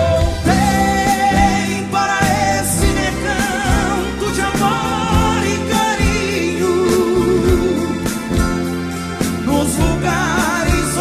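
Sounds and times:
live band music: 0.0s - 11.0s
person singing with vibrato: 0.0s - 11.0s.

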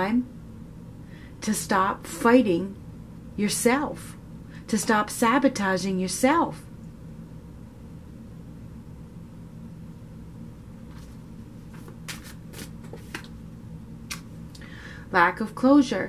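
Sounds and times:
low room hum: 0.0s - 16.0s
cards clicking and sliding: 10.9s - 13.4s.

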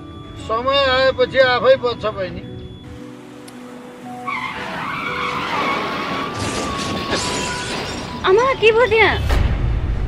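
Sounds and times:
background music: 0.0s - 10.0s
tyres screeching in a skid: 4.1s - 9.1s.

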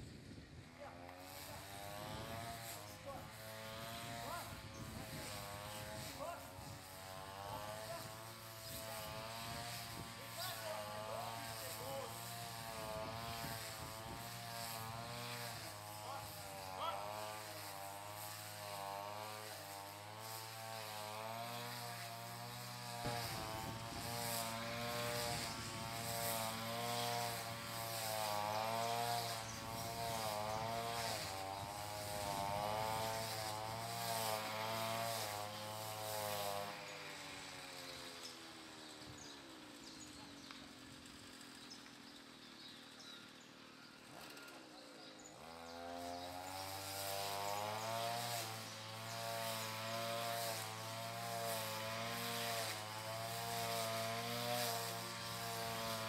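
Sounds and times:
string trimmer engine running: 0.0s - 56.0s.

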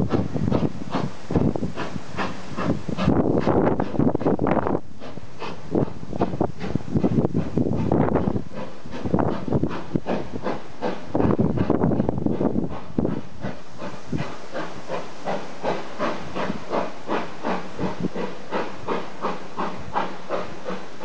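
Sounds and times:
steam locomotive exhaust chuffing: 0.0s - 21.0s.

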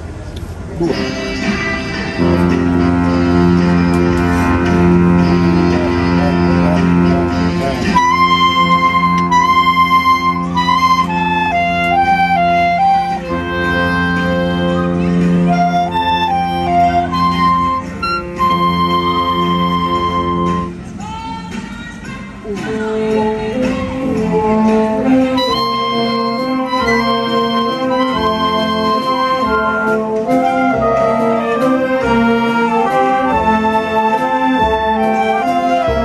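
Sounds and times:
woodwind band playing: 0.7s - 21.2s, 22.6s - 36.0s.

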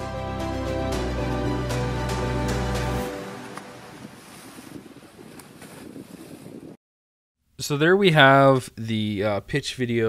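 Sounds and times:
trailer music: 0.0s - 4.1s
ocean surf: 0.0s - 5.7s.

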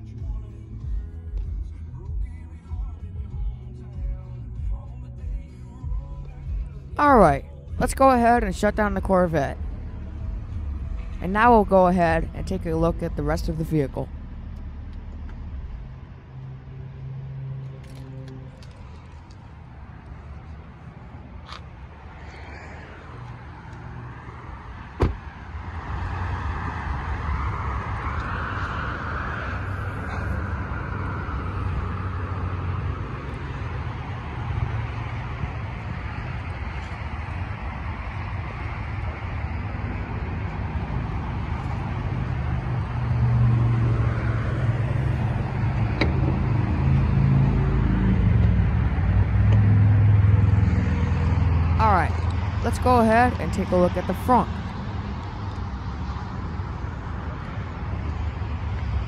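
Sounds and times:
road traffic rumble: 0.0s - 59.0s
vehicle passing: 6.7s - 59.0s
sharp thump: 25.0s - 25.2s.

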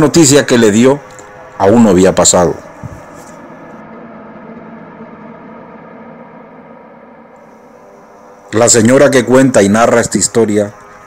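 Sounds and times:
sustained music drone: 0.0s - 11.0s.

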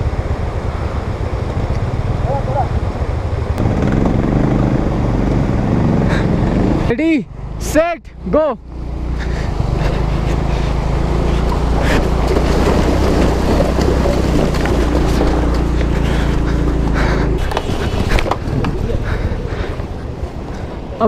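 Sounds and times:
scooter engine hum: 0.0s - 7.6s, 8.2s - 21.0s
wind buffeting microphone: 9.5s - 21.0s.

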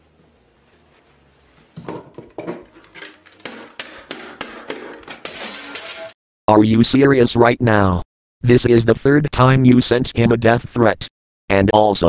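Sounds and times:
rapid sharp knocks: 3.3s - 5.5s.

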